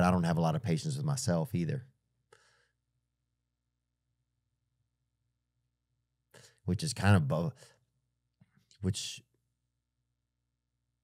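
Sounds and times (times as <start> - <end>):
faint breath out: 2.3 - 2.8.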